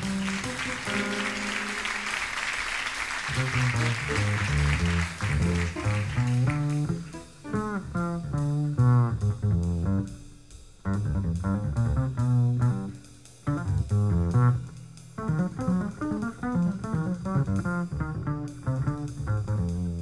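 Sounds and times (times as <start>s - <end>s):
plucked double bass: 0.0s - 1.7s, 3.3s - 10.2s, 10.9s - 20.0s
audience applause: 0.0s - 7.2s
soft jazz drums: 0.0s - 20.0s.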